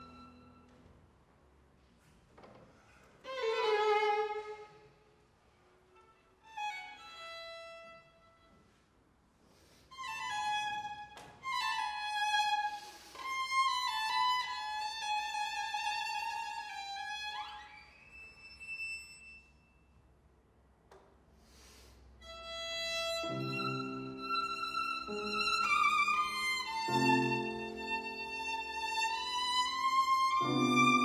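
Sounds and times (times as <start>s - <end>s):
solo violin playing: 0.0s - 0.7s, 3.2s - 5.0s, 5.9s - 8.5s, 9.9s - 19.4s, 22.2s - 31.0s.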